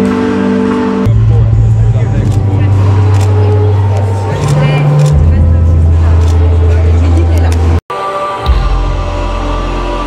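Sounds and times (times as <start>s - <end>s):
loud low motor hum: 0.0s - 7.8s.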